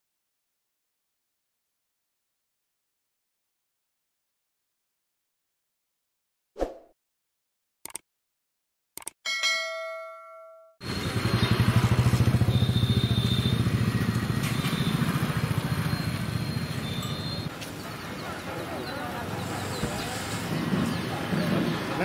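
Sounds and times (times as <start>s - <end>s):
bell-like notification chime: 9.3s - 10.8s
street noise: 10.8s - 22.0s.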